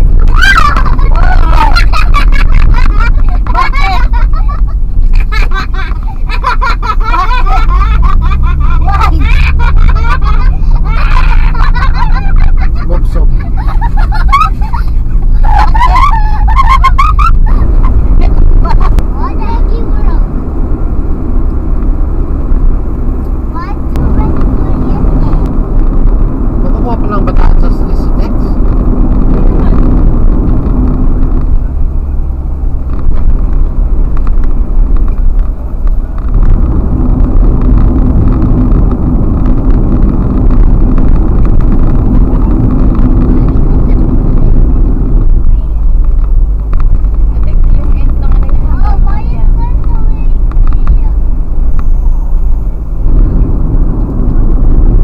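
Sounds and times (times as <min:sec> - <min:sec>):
car driving at highway speed: 0:00.0 - 0:55.0.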